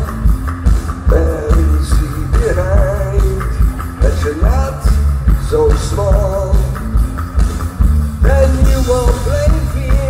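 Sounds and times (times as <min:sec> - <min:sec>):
live post-punk band playing: 0:00.0 - 0:10.0
pounding drums: 0:00.0 - 0:10.0.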